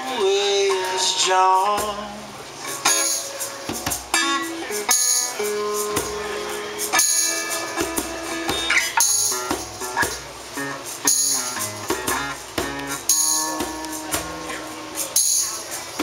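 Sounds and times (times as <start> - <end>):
acoustic guitar strumming: 0.0 - 16.0
drum kit: 0.0 - 16.0.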